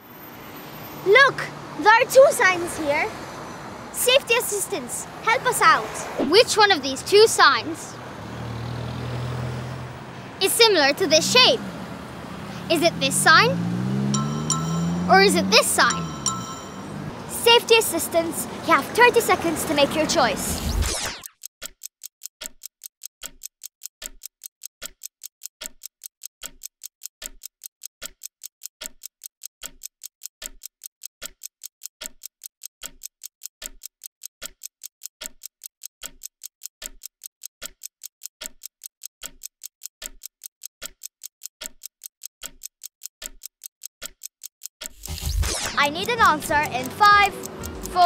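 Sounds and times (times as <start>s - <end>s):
ticking clock: 1.1s - 3.0s, 4.0s - 9.8s, 10.4s - 11.6s, 12.6s - 48.0s.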